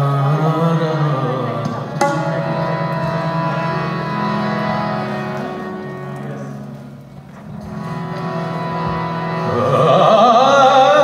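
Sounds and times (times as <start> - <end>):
harmonium playing held notes: 0.0 - 11.0.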